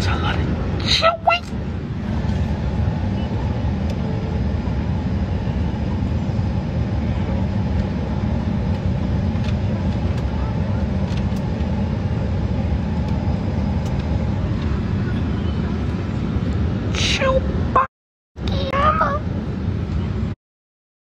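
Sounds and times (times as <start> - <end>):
airliner cabin drone: 0.0 - 20.4.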